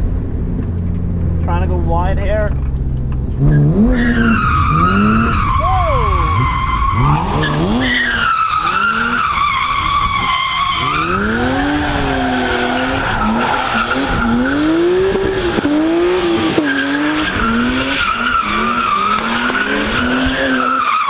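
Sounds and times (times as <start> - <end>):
car engine revving: 0.0 - 21.0
high tyre squeal: 3.4 - 21.0.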